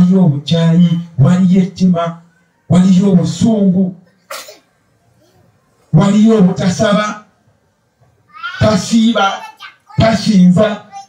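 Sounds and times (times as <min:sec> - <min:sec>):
sharp sneeze-like breath burst: 0:04.2 - 0:04.8.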